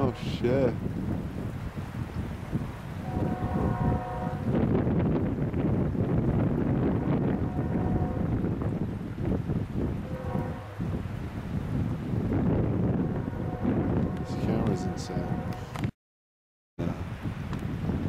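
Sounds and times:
wind buffeting microphone: 0.0s - 16.0s, 16.8s - 18.0s.

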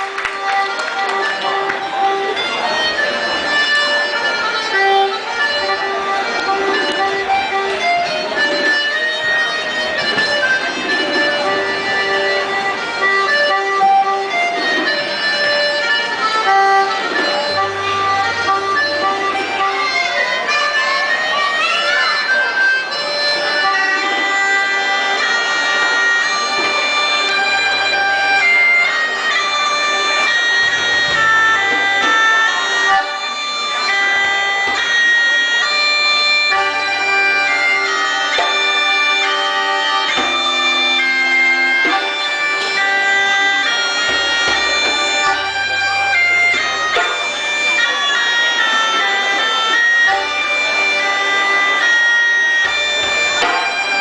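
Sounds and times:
accordion: 0.0s - 54.0s
bagpipe melody with drone: 0.0s - 54.0s.

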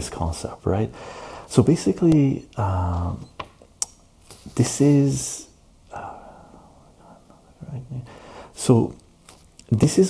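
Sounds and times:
quiet breathing: 0.9s - 1.6s, 5.9s - 8.7s
man saying uh: 7.6s - 9.0s.

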